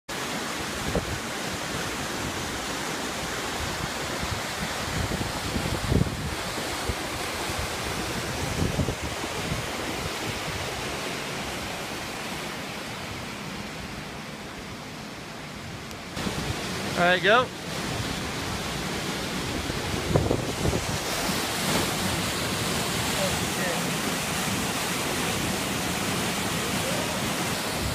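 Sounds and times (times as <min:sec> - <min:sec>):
wind bumps on microphone: 0:03.6 - 0:10.7, 0:19.4 - 0:22.3
waterfall pouring into pool: 0:21.1 - 0:27.9.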